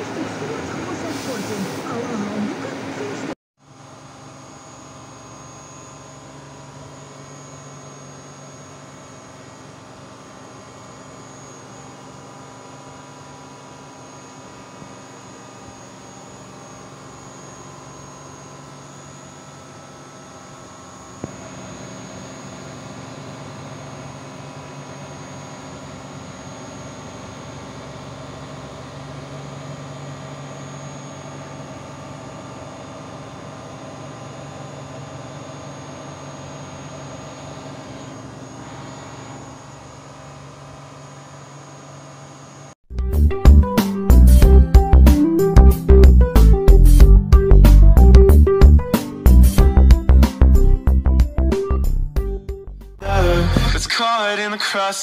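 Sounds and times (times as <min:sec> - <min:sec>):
milling machine hum and whine: 0:00.0 - 0:42.8.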